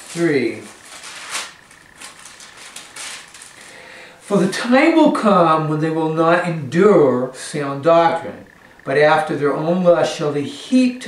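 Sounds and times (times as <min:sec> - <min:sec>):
paper pages rustling: 0:00.0 - 0:03.8.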